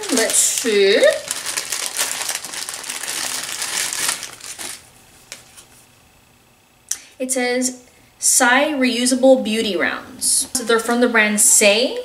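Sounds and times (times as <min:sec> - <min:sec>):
plastic packaging crinkling: 0:00.0 - 0:05.8.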